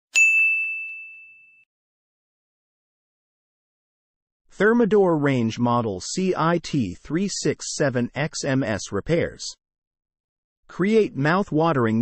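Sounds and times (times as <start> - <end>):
bright bell ding: 0.1 - 1.7.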